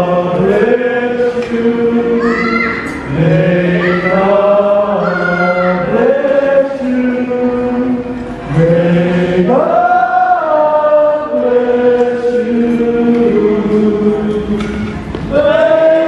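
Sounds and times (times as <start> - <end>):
group singing in harmony: 0.0 - 16.0.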